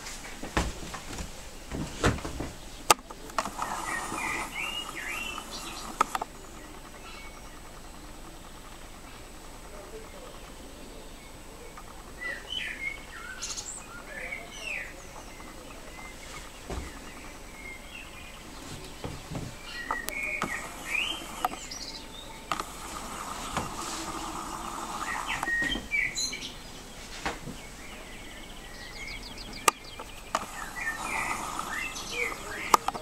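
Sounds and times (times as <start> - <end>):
small birds chirping: 0.0 - 33.0
sharp clicks: 2.8 - 10.6, 19.8 - 26.3, 29.3 - 33.0.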